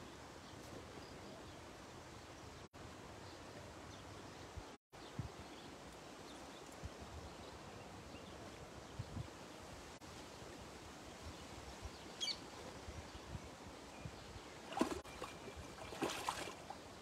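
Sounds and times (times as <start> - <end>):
bird chirp: 11.9 - 16.8.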